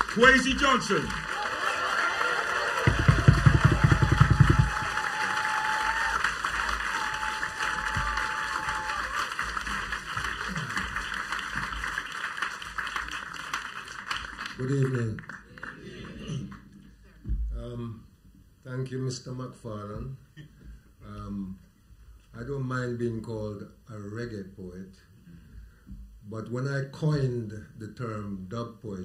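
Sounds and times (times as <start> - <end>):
audience applauding: 0.0 - 16.6
rapid low thumps: 2.9 - 5.0.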